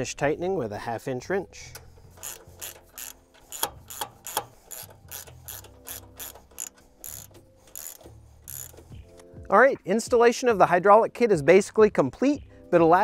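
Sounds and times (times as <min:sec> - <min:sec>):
ratchet wrench clicking: 0:01.7 - 0:09.1.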